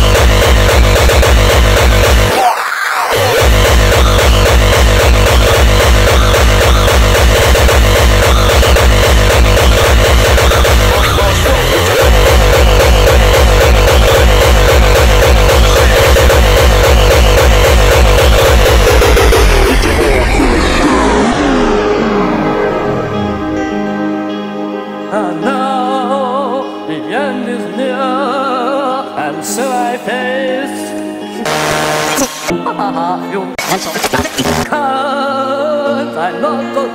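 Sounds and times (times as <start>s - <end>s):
hardcore electronic music: 0.0s - 24.4s, 31.4s - 32.7s, 33.6s - 34.7s.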